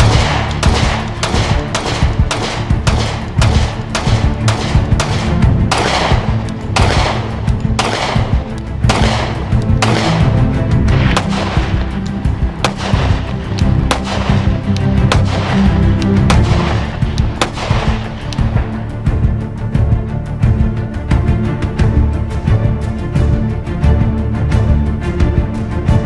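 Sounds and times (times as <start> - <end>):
pistol shots with echo: 0.0 - 10.4, 11.0 - 11.8, 12.6 - 18.1
background music: 0.0 - 26.0.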